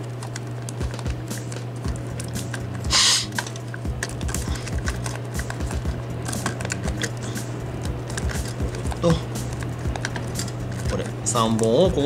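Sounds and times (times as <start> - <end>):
small plastic parts clicking: 0.0 - 12.0
background music: 0.7 - 12.0.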